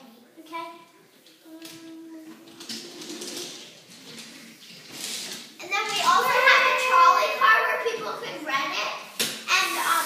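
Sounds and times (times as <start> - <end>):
child's wordless drawn-out voice: 5.6 - 10.0.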